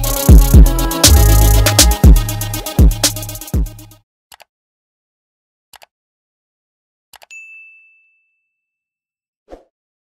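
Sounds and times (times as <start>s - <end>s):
notification bell ding: 7.3s - 8.9s.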